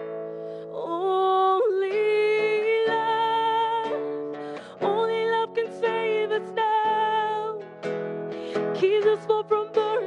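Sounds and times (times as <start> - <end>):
woman singing slow song: 0.0 - 10.0.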